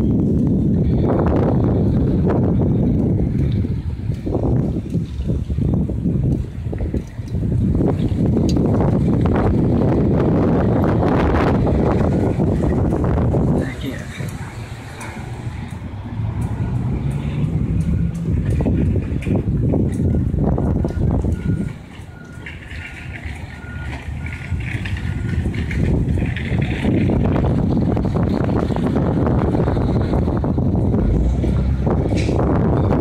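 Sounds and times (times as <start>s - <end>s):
large vehicle engine running: 0.0s - 33.0s
outdoor rumble: 0.0s - 33.0s
reversing alarm beeping: 20.0s - 25.5s.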